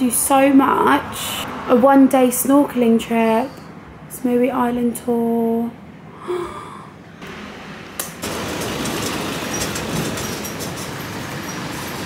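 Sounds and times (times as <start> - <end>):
street traffic rushing: 0.0 - 6.2, 6.8 - 12.0.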